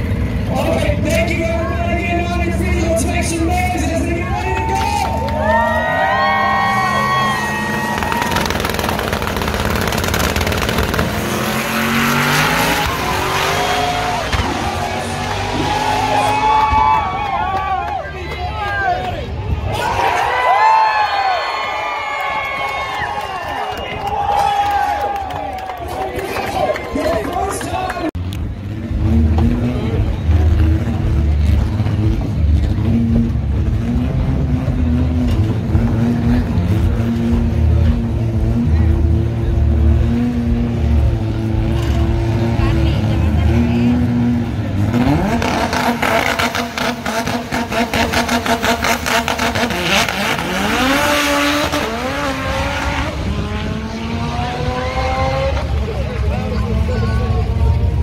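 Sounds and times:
drag racing engine revving: 5.7 - 16.8, 28.3 - 58.0.

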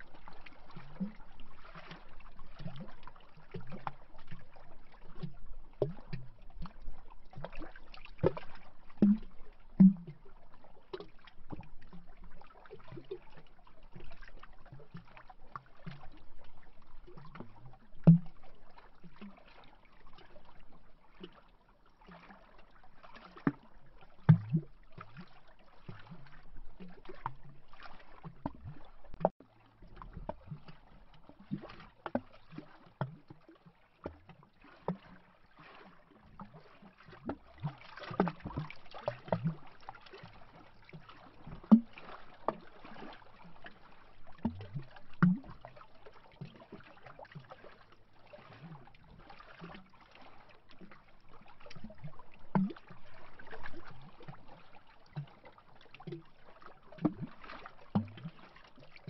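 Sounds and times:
lake waves lapping against wood: 0.0 - 59.0.

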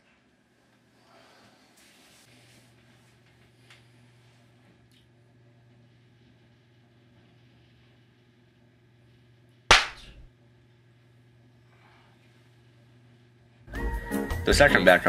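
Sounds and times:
faint room hum: 0.0 - 15.0
loud slap across a face: 9.7 - 10.3
music: 13.7 - 15.0.

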